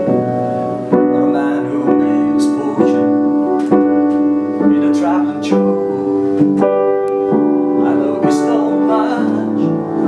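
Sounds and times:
piano playing sustained chords: 0:00.0 - 0:10.0.

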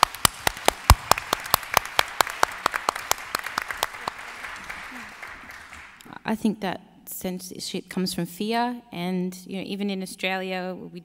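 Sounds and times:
sharp single claps close up: 0:00.0 - 0:03.9
audience applauding: 0:00.0 - 0:06.0.

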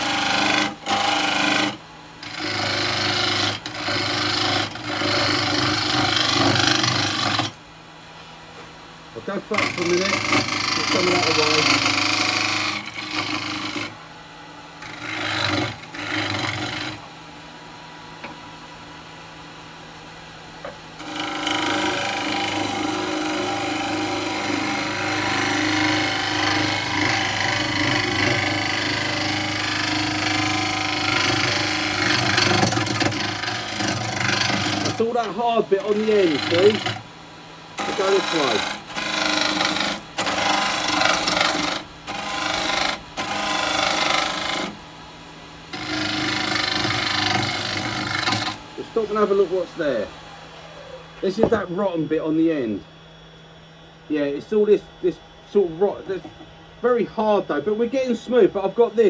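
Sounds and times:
cutter scraping wood on lathe: 0:00.0 - 0:07.6, 0:09.2 - 0:14.0, 0:14.8 - 0:17.1, 0:21.0 - 0:37.0, 0:37.8 - 0:44.8, 0:45.7 - 0:50.0
lathe motor hum: 0:00.0 - 0:07.6, 0:08.5 - 0:18.8, 0:20.6 - 0:59.0.

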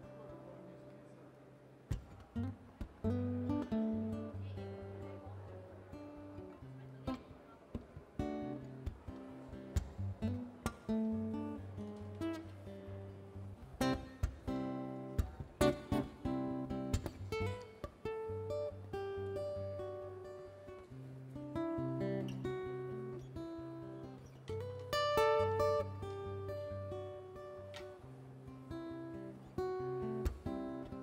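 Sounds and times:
acoustic guitar playing: 0:01.8 - 0:31.0.

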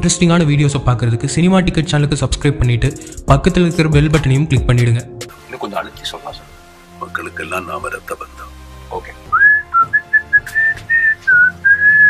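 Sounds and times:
person whistling a tune: 0:09.3 - 0:12.0.

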